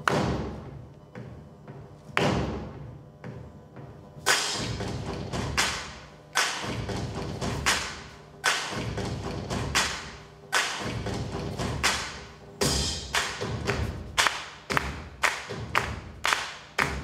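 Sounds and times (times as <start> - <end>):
heavy drum strikes: 8.7 - 10.1, 10.8 - 15.9.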